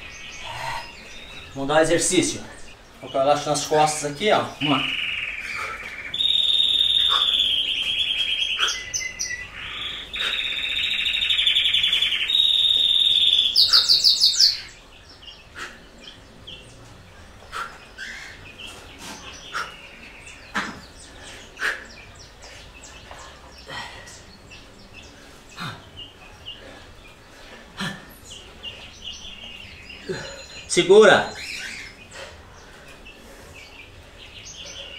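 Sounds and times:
songbird trilling: 0.0 - 16.7, 28.1 - 32.2.

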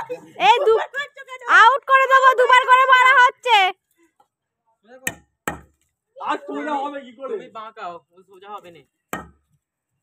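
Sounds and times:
hammer striking a nail in wood: 5.1 - 5.8.

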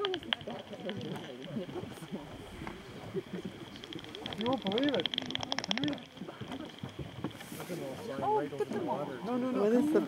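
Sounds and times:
bat detector clicking: 0.0 - 7.7
voices talking over one another: 0.0 - 10.0.

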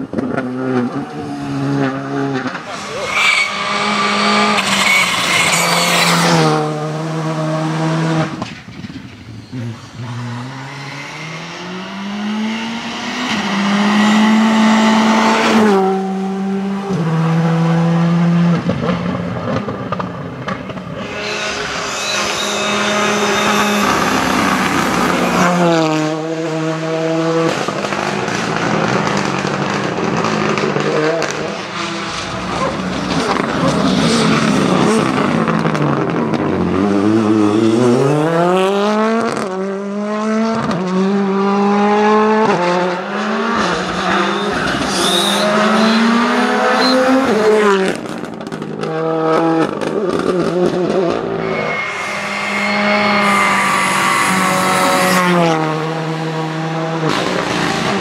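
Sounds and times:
rally cars passing at full throttle: 0.0 - 58.0.

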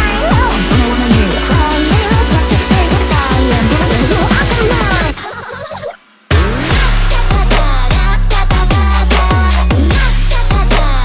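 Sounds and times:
deep bass: 0.0 - 5.2, 6.3 - 11.0
electronic pop song: 0.0 - 11.0.

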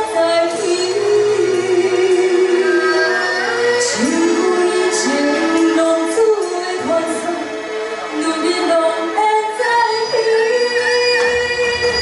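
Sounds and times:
woman singing into microphone: 0.0 - 12.0.

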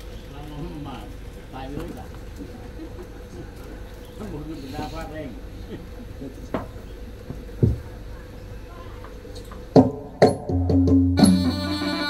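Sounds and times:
people talking indistinctly: 0.4 - 6.9.

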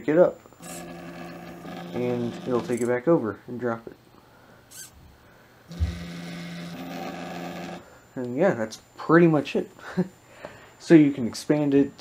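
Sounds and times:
stepper motors whining: 0.6 - 2.9, 5.7 - 7.8.

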